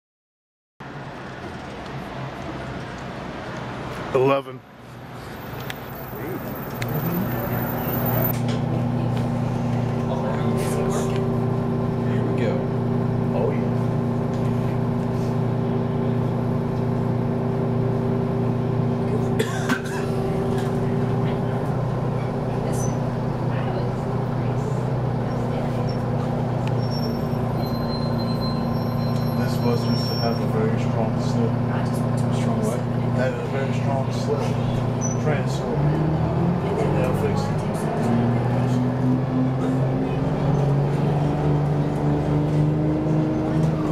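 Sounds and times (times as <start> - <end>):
diesel bus engine running: 0.8 - 43.9.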